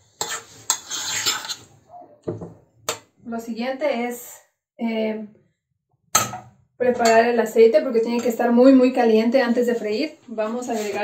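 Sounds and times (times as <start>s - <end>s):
woman speaking: 3.2s - 5.3s, 6.8s - 11.0s.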